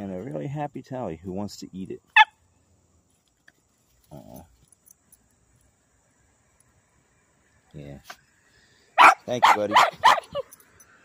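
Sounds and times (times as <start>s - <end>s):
puppy yipping: 9.0s - 10.5s.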